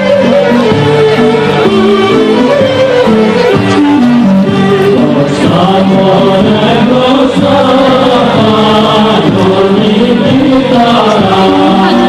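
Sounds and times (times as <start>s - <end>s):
voices singing folk song with music: 0.0s - 12.0s.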